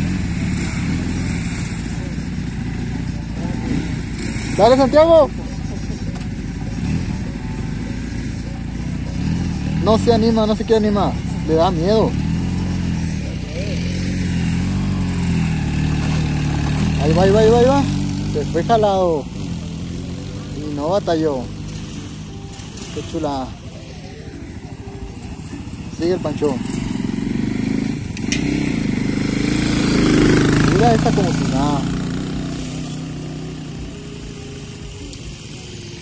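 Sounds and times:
motorcycle engine idling: 0.0s - 36.0s.

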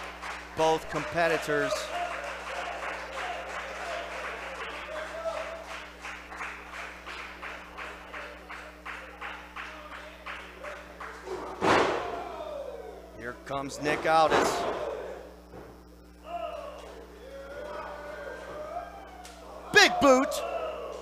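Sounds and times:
crowd clapping in unison: 0.0s - 11.6s
scattered voices cheering: 0.6s - 5.8s, 9.6s - 15.4s, 16.2s - 21.0s
body thudding on wrestling ring: 11.4s - 12.2s.

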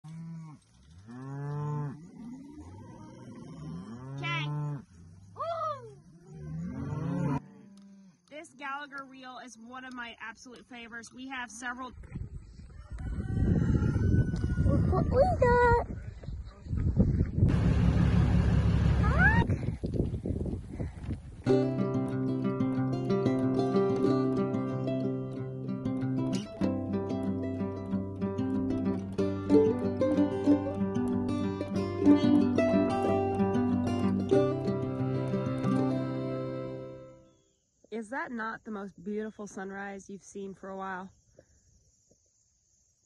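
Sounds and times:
cattle mooing: 0.1s - 4.9s, 6.1s - 7.9s
plucked-string music: 21.5s - 37.2s.

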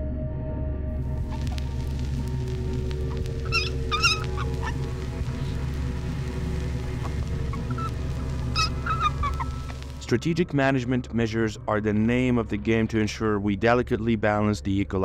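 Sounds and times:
low music drone: 0.0s - 14.2s
fox cubs squeaking: 1.2s - 10.0s.

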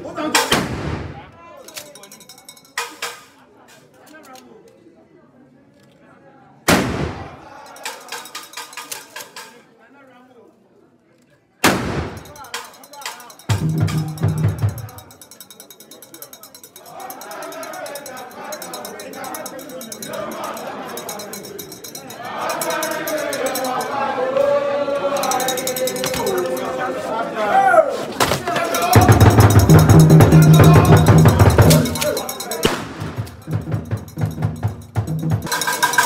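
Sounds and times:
many voices talking: 0.0s - 36.0s
loud sharp bangs ringing: 11.6s - 12.5s, 32.6s - 34.9s.

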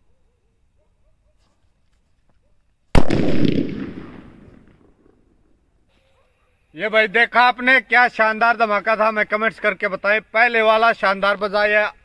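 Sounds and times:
firecracker blast with rumbling echo: 3.0s - 5.3s.

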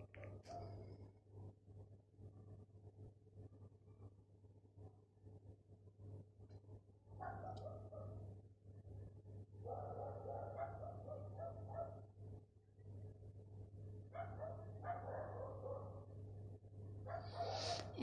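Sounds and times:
steady low hum: 0.0s - 18.0s
dog barking faintly: 7.2s - 8.2s, 9.6s - 12.1s, 14.2s - 16.1s, 17.1s - 18.0s.

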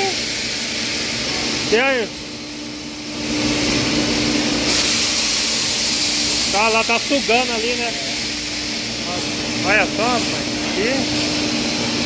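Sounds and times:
low machine hum: 0.0s - 12.0s
air suction hiss: 3.0s - 12.0s.

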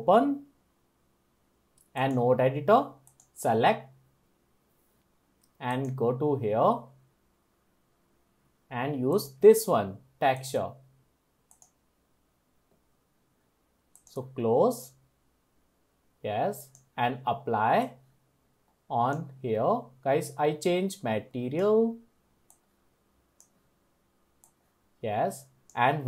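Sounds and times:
faint computer mouse clicks: 3.0s - 3.4s, 11.5s - 11.8s, 22.4s - 22.7s, 23.4s - 23.6s, 24.4s - 24.6s.

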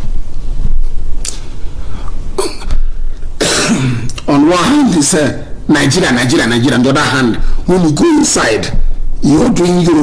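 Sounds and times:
man coughing: 2.4s - 2.8s, 3.4s - 4.2s.

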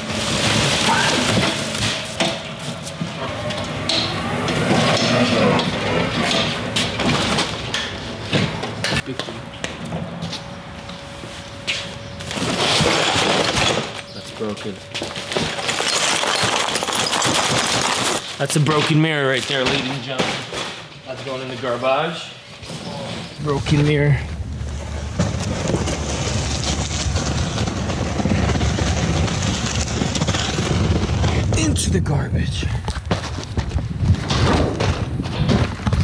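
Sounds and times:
glass shards rattling in a box: 15.6s - 18.2s
cardboard box scraping: 24.8s - 31.5s.

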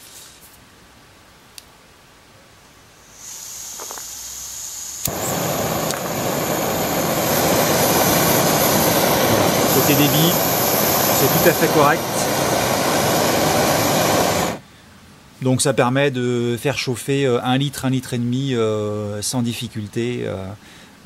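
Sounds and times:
gas hissing: 3.0s - 14.6s
gas stove burning: 3.1s - 14.6s
burner ignition click: 5.0s - 14.6s.

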